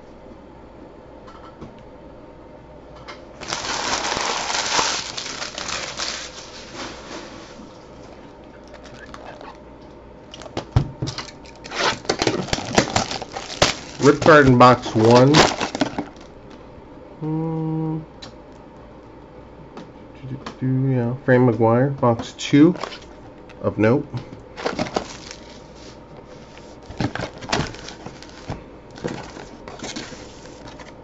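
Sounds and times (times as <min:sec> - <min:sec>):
packaging crinkling: 0:03.4 - 0:09.6, 0:10.2 - 0:16.3, 0:22.7 - 0:23.2, 0:24.5 - 0:31.0.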